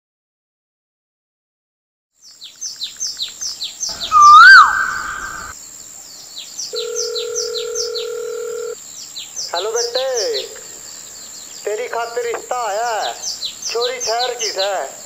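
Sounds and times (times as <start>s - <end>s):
birds chirping: 2.2s - 15.0s
rising and falling tone: 3.9s - 5.5s
steady telephone tone: 6.8s - 8.8s.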